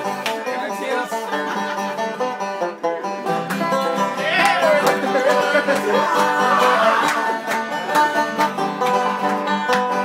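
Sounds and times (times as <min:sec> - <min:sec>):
banjo picking: 0:00.0 - 0:10.0.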